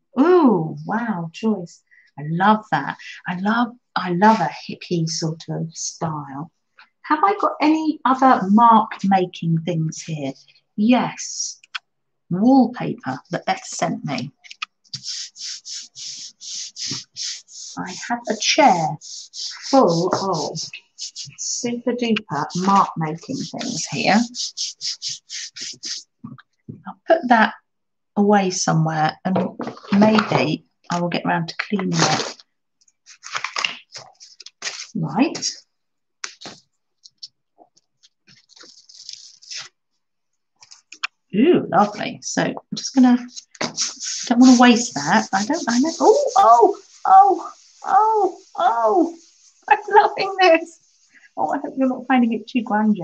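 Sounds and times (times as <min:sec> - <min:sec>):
hand rubbing paper: 0:14.4 - 0:26.2, 0:31.8 - 0:32.4, 0:33.0 - 0:35.6, 0:38.0 - 0:39.8, 0:42.9 - 0:51.3
crackly paper rustle: 0:31.6 - 0:35.6, 0:36.2 - 0:39.8, 0:40.6 - 0:41.1.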